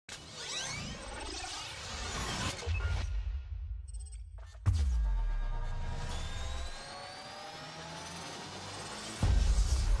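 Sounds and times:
synthesized riser whoosh: 4.8 - 10.0.

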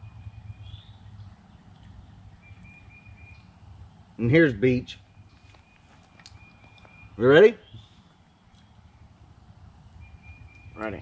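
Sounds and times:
bird whistling: 0.0 - 1.1, 2.4 - 3.6, 5.1 - 9.1, 10.0 - 10.9
low rumble: 0.0 - 4.2.

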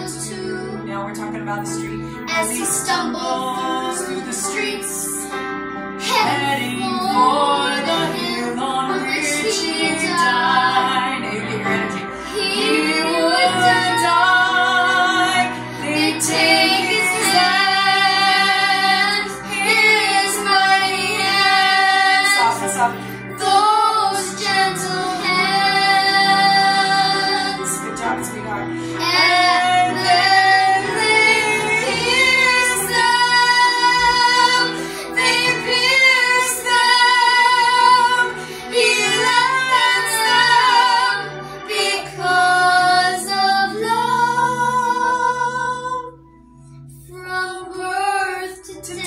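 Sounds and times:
girl singing slow melody: 0.0 - 49.0
soft musical accompaniment: 0.0 - 49.0.

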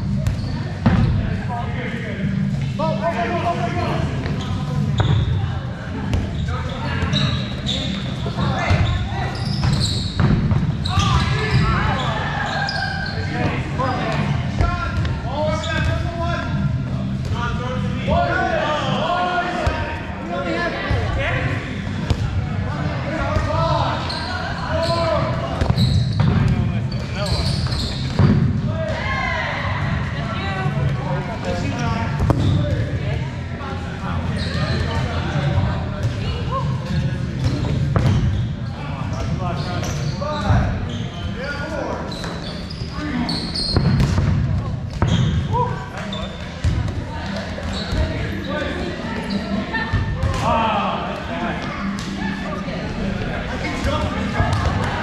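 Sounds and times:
dodgeballs thudding and bouncing: 0.0 - 1.4, 4.2 - 12.3, 13.2 - 16.2, 16.9 - 18.2, 20.8 - 24.1, 24.9 - 29.1, 30.8 - 33.3, 34.6 - 40.8, 42.2 - 48.8, 49.8 - 50.7, 53.2 - 55.0
players shouting and chattering: 0.0 - 55.0.

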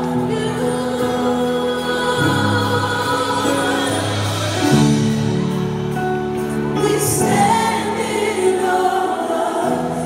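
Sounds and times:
women singing lead: 0.0 - 5.1, 6.7 - 10.0
gospel choir singing: 0.0 - 10.0.

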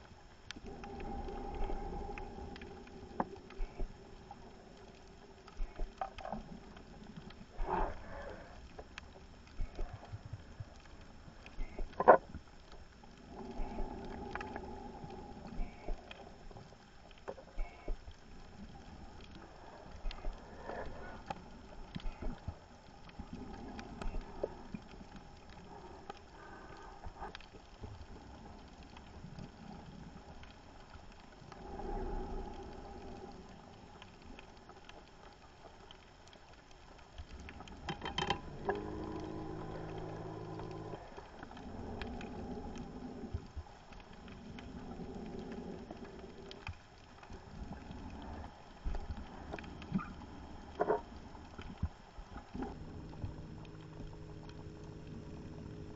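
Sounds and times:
underwater bubbles rumbling: 0.0 - 55.9.

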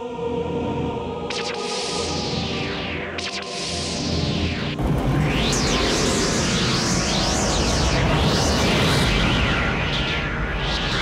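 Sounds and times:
background music: 0.0 - 5.0
rising and falling sweeping tones: 1.2 - 11.0
rumbling hissing energy blast: 4.7 - 11.0.

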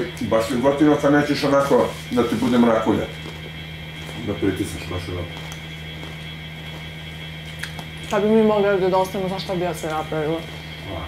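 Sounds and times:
faint high whine: 0.0 - 11.0
steady background hum: 0.0 - 11.0.

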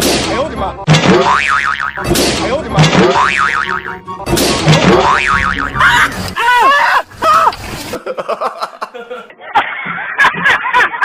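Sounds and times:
background music: 0.0 - 6.6
cartoon boing effect: 0.9 - 2.1, 3.0 - 4.0, 4.7 - 6.1
cartoonish sliding pitched sounds: 3.7 - 8.0.

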